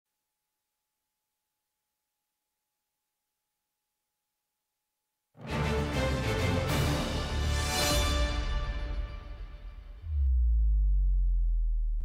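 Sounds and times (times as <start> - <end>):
deep sub-bass hit: 10.0 - 12.0.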